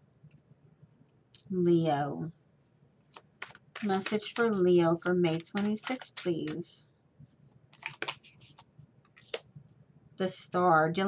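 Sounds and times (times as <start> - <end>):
cards sliding: 3.1 - 6.6, 7.7 - 9.5.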